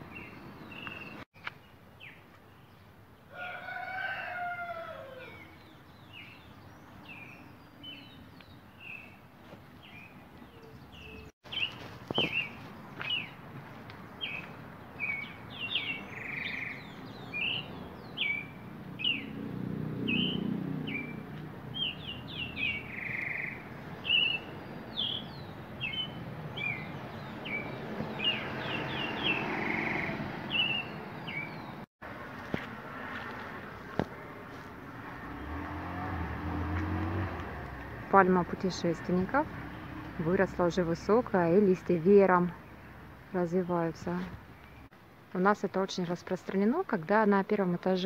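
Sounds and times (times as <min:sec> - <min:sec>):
small birds chirping: 0:00.0 - 0:03.1, 0:05.2 - 0:31.9, 0:37.7 - 0:48.0.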